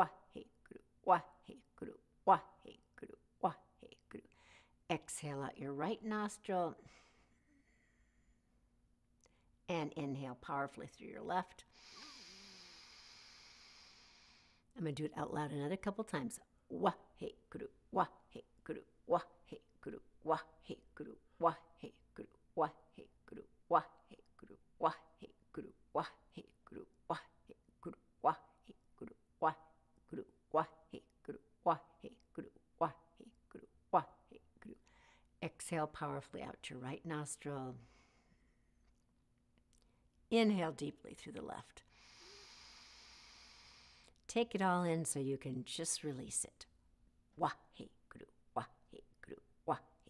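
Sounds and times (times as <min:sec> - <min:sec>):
woman speaking: 0:00.0 - 0:04.3, 0:04.9 - 0:06.8, 0:09.7 - 0:11.7, 0:14.8 - 0:24.2, 0:24.8 - 0:28.8, 0:29.4 - 0:34.8, 0:35.4 - 0:37.8, 0:40.3 - 0:41.8, 0:44.3 - 0:46.7, 0:47.4 - 0:50.0
nostril inhale hiss: 0:11.7 - 0:14.6, 0:41.9 - 0:44.2
short breath: 0:11.7 - 0:14.7, 0:41.9 - 0:44.2.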